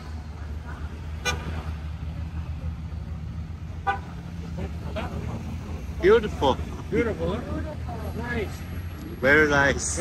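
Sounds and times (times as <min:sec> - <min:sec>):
trucks rumbling past: 0:00.0 - 0:10.0
vehicle horn toots: 0:03.8 - 0:04.1.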